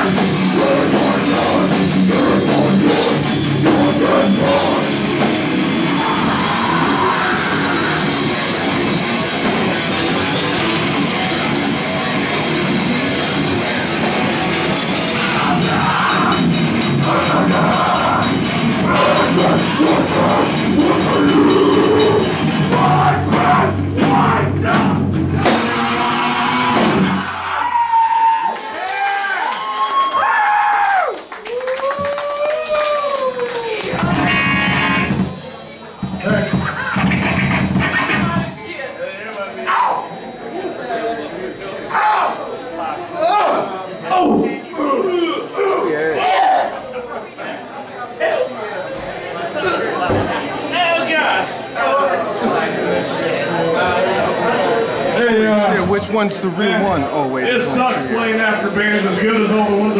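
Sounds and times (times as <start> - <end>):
live rock band playing: 0.0 - 27.3, 33.9 - 38.6.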